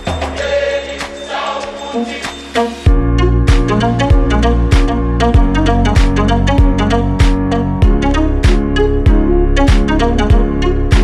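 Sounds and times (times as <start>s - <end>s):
chant-like layered vocals: 0.0s - 2.9s
slowed tropical house music: 0.0s - 11.0s
deep bass note: 2.9s - 11.0s.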